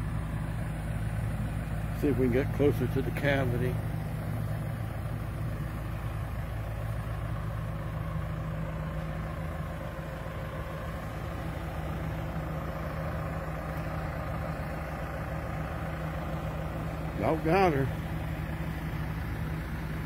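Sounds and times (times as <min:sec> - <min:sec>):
excavator diesel engine running: 0:00.0 - 0:20.0.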